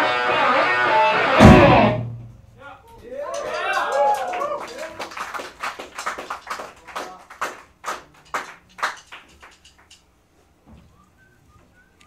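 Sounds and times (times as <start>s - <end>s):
audience clapping: 3.1s - 10.0s.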